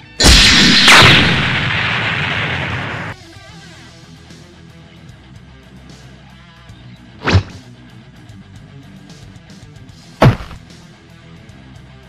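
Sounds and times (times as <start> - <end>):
explosion blast: 0.0 - 3.2.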